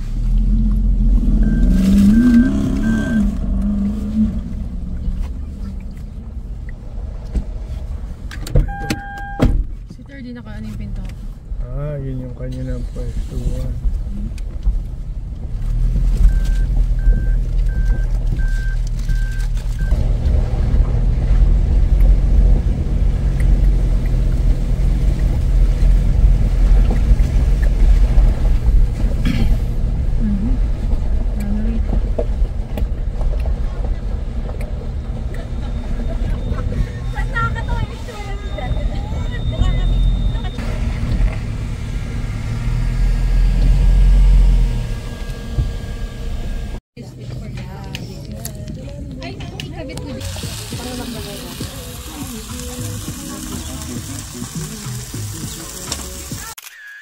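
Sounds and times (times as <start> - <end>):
vehicle rumbling over gravel: 0.0 - 8.3, 10.5 - 46.8, 47.7 - 56.6
repeating high beep: 1.4 - 3.3, 8.7 - 9.5, 35.7 - 40.6.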